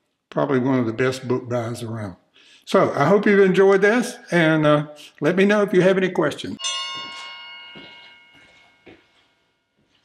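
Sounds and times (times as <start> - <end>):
bell ringing: 6.6 - 10.0.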